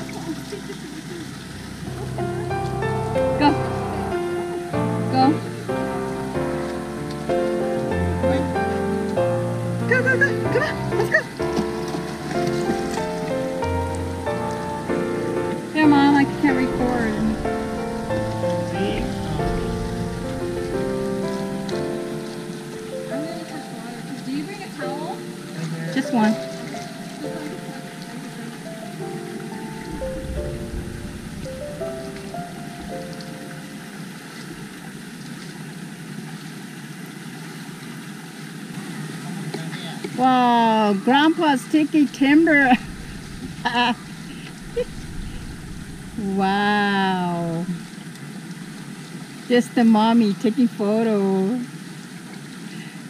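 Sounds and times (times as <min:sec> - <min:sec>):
slow piano melody: 0:00.0 - 0:35.3, 0:40.2 - 0:48.4
running creek water: 0:00.0 - 0:53.0.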